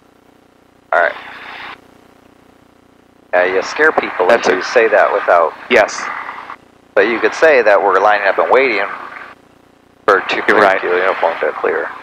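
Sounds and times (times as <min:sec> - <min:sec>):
intercom hiss: 0:00.9 - 0:01.8, 0:03.3 - 0:09.1, 0:10.1 - 0:12.0.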